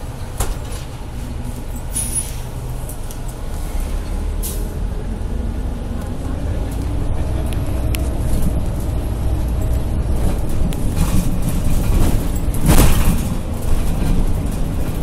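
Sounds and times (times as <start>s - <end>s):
bus engine rumble: 0.0s - 15.0s
road noise: 0.0s - 15.0s.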